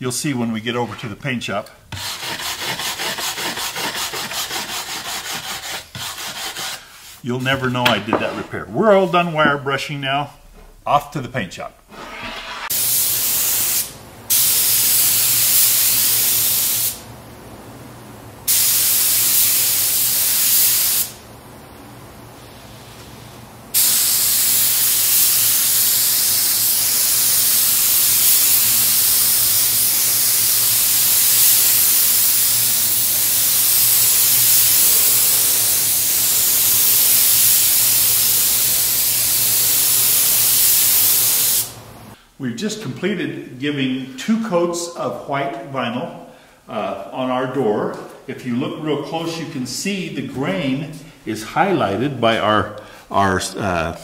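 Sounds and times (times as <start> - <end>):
spray gun hissing: 11.9 - 17.1, 18.4 - 21.3, 22.4 - 42.2.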